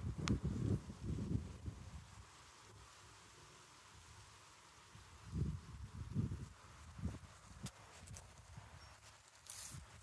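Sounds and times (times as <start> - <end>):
short rustle: 6.5 - 10.0.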